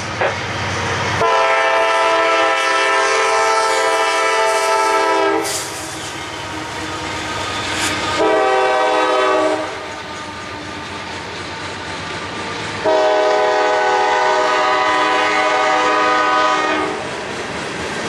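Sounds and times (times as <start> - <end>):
freight cars rumbling on rails: 0.0 - 18.0
locomotive chord horn blasts: 1.2 - 5.8, 8.0 - 10.0, 12.8 - 17.0.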